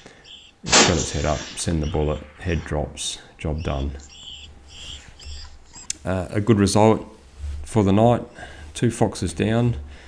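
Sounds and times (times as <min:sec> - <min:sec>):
low steady hum: 0:00.0 - 0:10.0
short high-pitched squeaks: 0:03.6 - 0:05.9.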